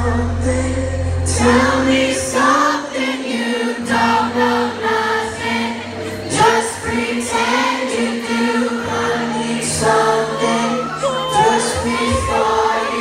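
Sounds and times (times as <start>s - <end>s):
crowd singing along: 0.0s - 13.0s
live pop rock band: 0.0s - 13.0s.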